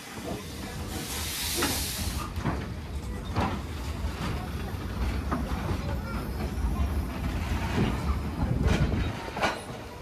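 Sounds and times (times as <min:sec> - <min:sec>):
steam locomotive rolling past: 0:00.0 - 0:10.0.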